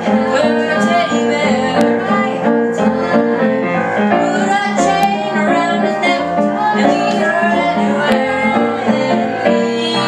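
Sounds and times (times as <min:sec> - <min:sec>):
children singing together: 0:00.0 - 0:10.0
piano chords: 0:00.0 - 0:10.0.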